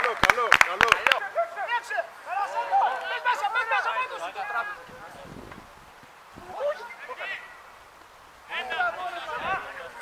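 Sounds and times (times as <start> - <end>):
voices shouting over each other: 1.0 - 5.3, 6.4 - 7.8, 8.4 - 10.0.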